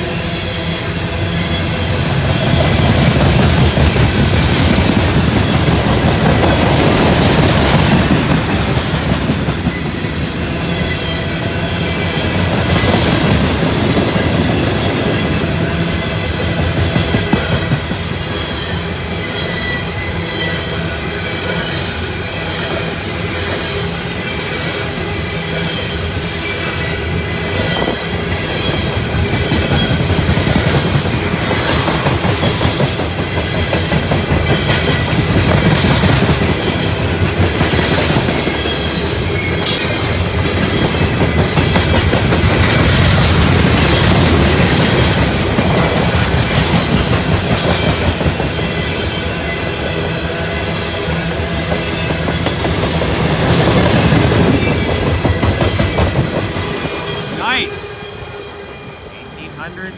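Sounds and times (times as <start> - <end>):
train wheels clattering on rails: 0.0 - 57.5.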